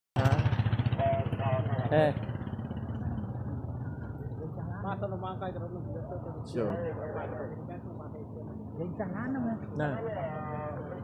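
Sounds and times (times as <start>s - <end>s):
motorcycle engine running: 0.2s - 8.8s.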